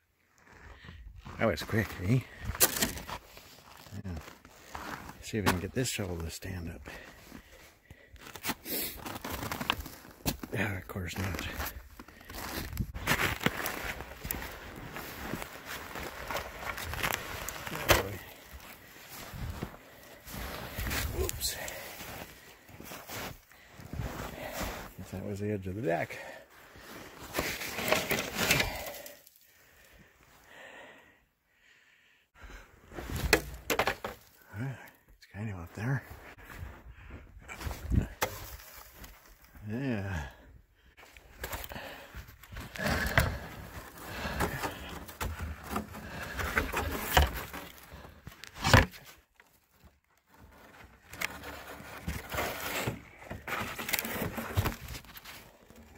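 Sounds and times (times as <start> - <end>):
footsteps crunching through snow: 8.2 - 25.0.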